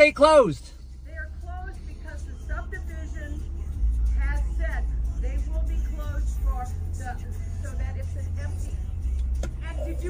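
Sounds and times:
car engine idling: 0:00.0 - 0:10.0
woman's voice outside: 0:01.0 - 0:10.0.

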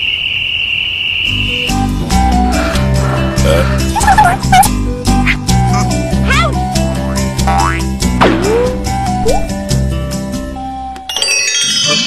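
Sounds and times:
cartoon background music: 0:01.4 - 0:12.0.

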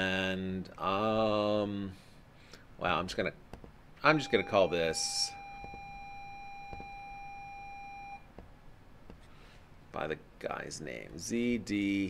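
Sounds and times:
electronic beep tone: 0:04.1 - 0:08.2.

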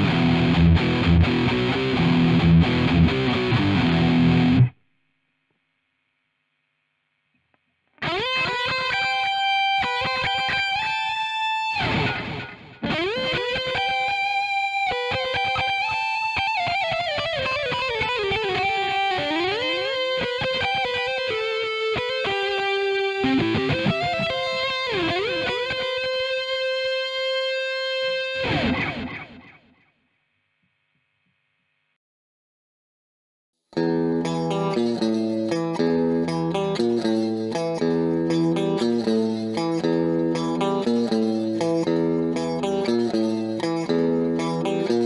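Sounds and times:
distorted electric guitar solo: 0:00.0 - 0:04.8, 0:08.0 - 0:29.6, 0:33.8 - 0:45.0.

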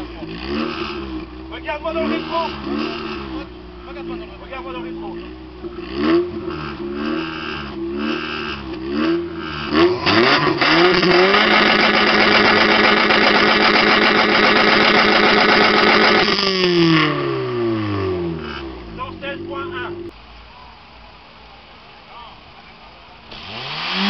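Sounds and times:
car engine revving at exhaust: 0:00.0 - 0:20.2, 0:23.2 - 0:24.0.

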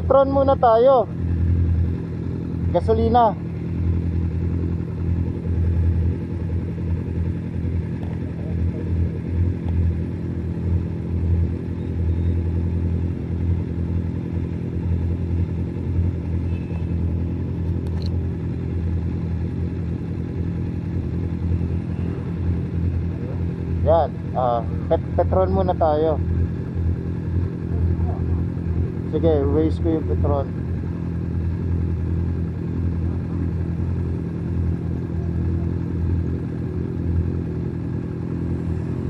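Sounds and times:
motorcycle engine idling: 0:00.0 - 0:39.0
people talking: 0:23.2 - 0:26.2, 0:27.7 - 0:28.4, 0:29.1 - 0:30.5.

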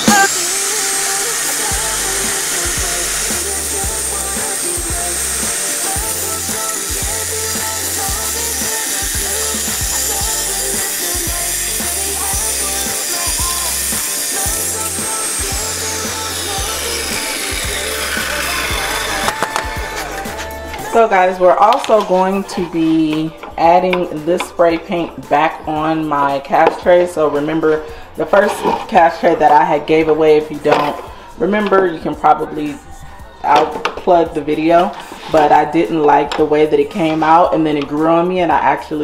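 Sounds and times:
table saw motor whine: 0:00.0 - 0:20.3
background music with bass beat: 0:00.0 - 0:21.5.

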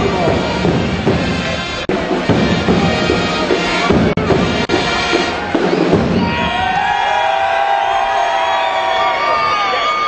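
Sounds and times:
crowd cheering: 0:02.9 - 0:10.0
long held shouts and whoops: 0:06.1 - 0:10.0.

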